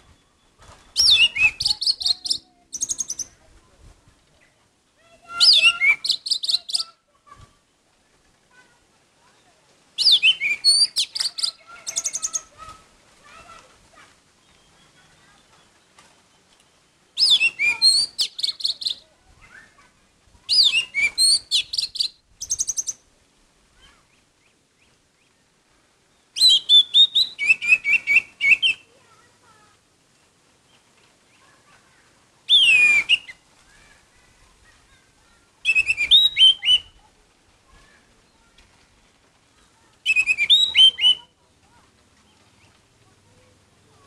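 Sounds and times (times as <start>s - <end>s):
thrush singing whistles and trills: 0.0s - 3.4s, 5.4s - 6.9s, 10.0s - 12.5s, 17.2s - 19.0s, 20.5s - 23.0s, 26.3s - 28.9s, 32.5s - 33.4s, 35.6s - 37.0s, 40.0s - 41.3s.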